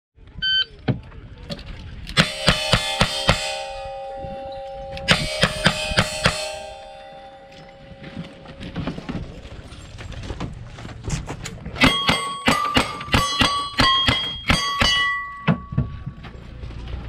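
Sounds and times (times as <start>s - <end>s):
steel targets ringing: 2.2s - 9.4s, 11.8s - 16.2s.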